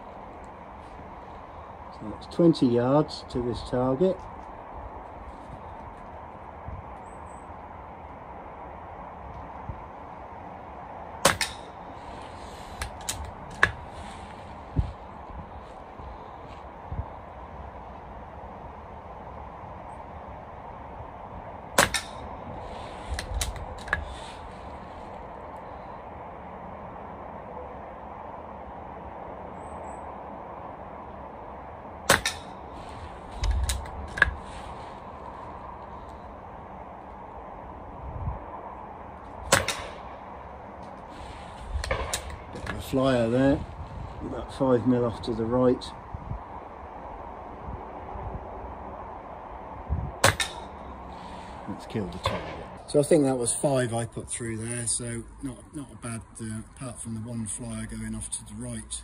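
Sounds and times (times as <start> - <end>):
air rifle shot crack: 11.2 - 11.8, 21.7 - 22.3, 32.1 - 32.6, 39.4 - 40.2, 41.8 - 42.8, 50.2 - 50.8, 52.1 - 52.8.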